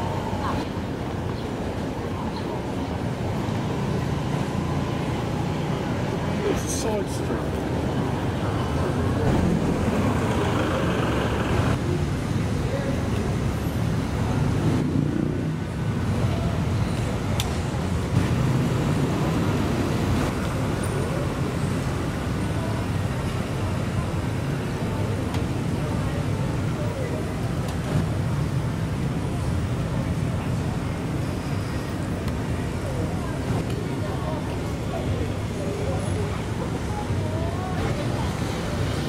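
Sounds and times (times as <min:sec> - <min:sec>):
people's voices: 0:00.0 - 0:39.0
road traffic: 0:00.0 - 0:39.0.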